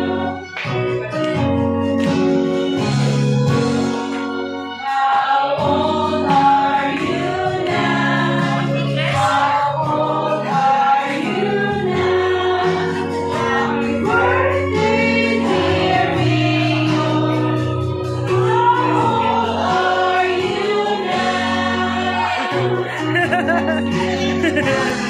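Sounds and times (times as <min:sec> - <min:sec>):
group singing: 0:00.0 - 0:00.4, 0:04.8 - 0:25.0
woman singing into microphone: 0:04.8 - 0:25.0
instrumental accompaniment: 0:12.7 - 0:25.0.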